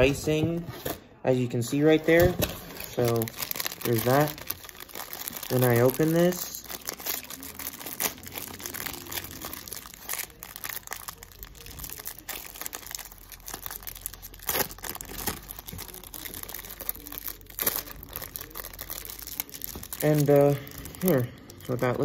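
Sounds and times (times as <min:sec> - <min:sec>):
plastic wrapper crinkling and tearing: 0:01.8 - 0:22.0.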